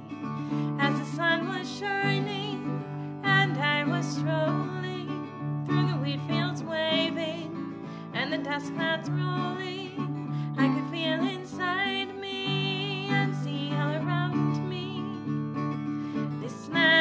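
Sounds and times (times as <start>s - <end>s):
acoustic guitar: 0.0s - 17.0s
woman singing folk song: 0.0s - 17.0s.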